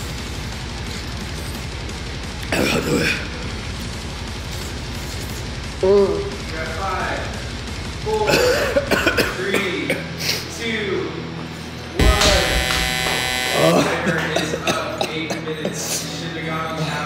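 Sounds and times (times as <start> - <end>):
harsh electric buzzer: 12.0 - 14.2.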